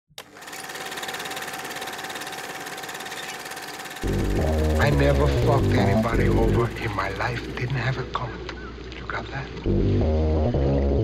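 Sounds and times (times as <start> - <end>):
rapid mechanical clatter: 0.2 - 5.6
steady high whine: 4.0 - 8.6.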